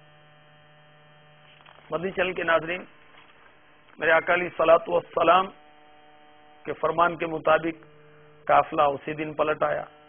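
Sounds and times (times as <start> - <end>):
faint buzzy electrical hum: 0.0 - 10.0.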